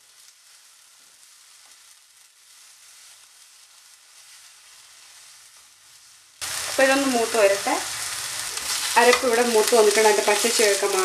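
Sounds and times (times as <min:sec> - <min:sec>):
onions sizzling in oil: 0:00.0 - 0:11.0
wooden spatula stirring and scraping: 0:08.0 - 0:11.0.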